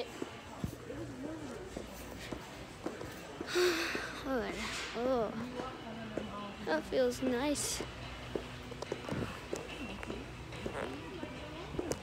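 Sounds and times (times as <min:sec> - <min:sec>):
steady room hum: 0:00.0 - 0:12.0.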